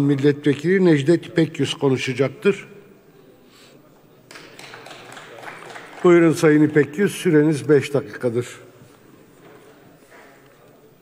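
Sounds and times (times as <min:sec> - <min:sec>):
low murmur of hall: 0:00.0 - 0:11.0.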